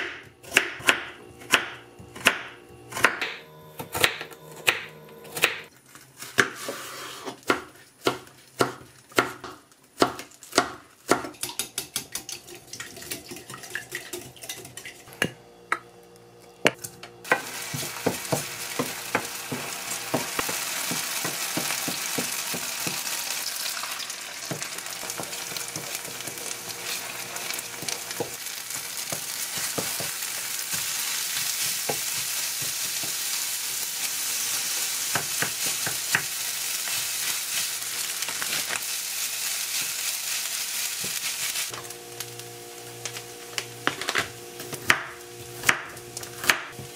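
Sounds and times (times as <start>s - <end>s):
knife chopping on wooden board: 0.0s - 5.7s, 6.4s - 12.1s, 16.6s - 23.1s, 24.5s - 26.3s, 27.8s - 33.2s, 35.1s - 36.4s, 43.8s - 46.9s
wooden spatula scraping pan: 6.5s - 7.4s
oil sizzling in frying pan: 17.2s - 46.9s.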